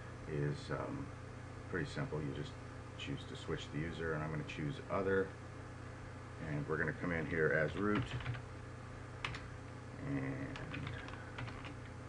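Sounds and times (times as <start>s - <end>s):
keyboard typing: 7.7s - 8.4s, 9.2s - 9.5s, 10.5s - 11.9s.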